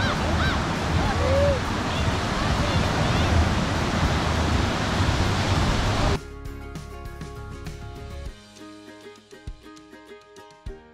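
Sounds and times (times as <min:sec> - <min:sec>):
small waves breaking: 0:00.0 - 0:06.2
background music of held notes: 0:06.1 - 0:10.9.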